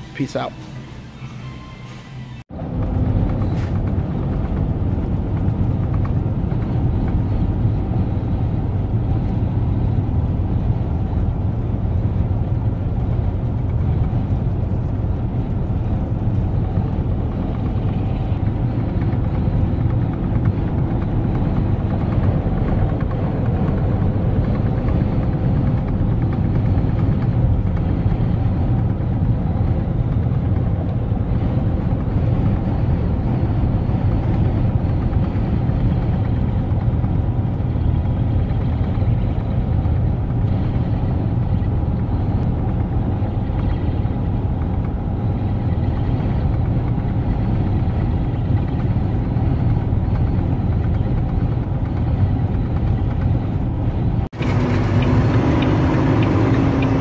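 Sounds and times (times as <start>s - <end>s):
road and wind noise: 0.0s - 57.0s
truck engine hum: 0.0s - 57.0s.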